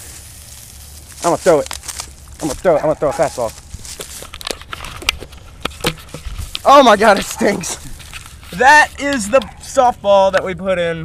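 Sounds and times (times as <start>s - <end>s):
low rustle: 0.0s - 9.0s
bonfire crackling and popping: 0.0s - 10.5s.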